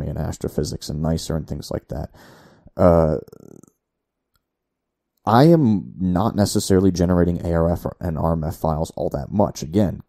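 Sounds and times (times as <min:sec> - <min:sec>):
man saying uh: 0:02.8 - 0:03.6.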